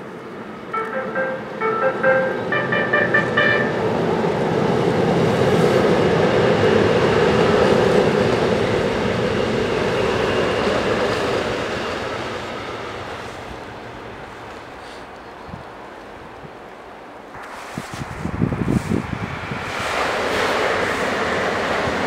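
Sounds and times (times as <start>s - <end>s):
electric train passing: 0.0s - 22.0s.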